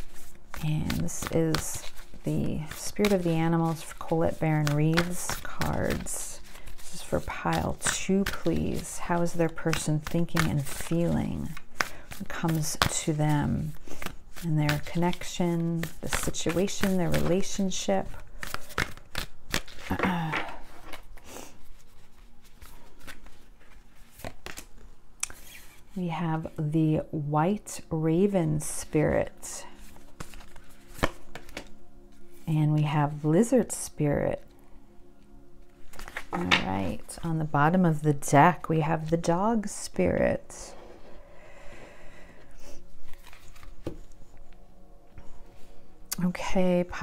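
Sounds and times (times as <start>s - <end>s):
cards being shuffled: 0.0s - 26.0s, 29.7s - 32.4s, 35.7s - 37.1s, 43.0s - 44.6s.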